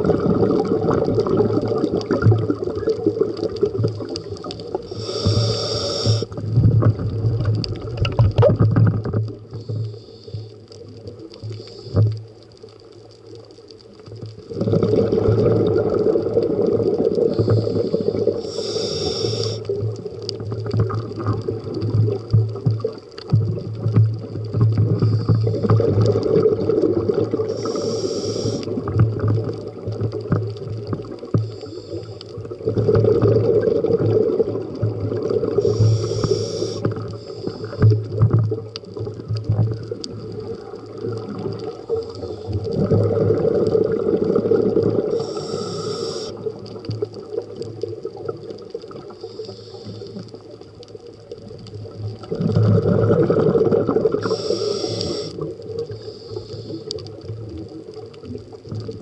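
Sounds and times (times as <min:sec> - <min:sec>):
exhaled bubbles gurgling underwater: 0:00.0 - 0:59.0
regulator hiss on inhale: 0:03.4 - 0:06.6, 0:09.4 - 0:12.9, 0:16.4 - 0:22.1, 0:24.7 - 0:34.6, 0:35.2 - 0:39.0, 0:41.6 - 0:47.0, 0:48.8 - 0:50.9, 0:54.0 - 0:57.7.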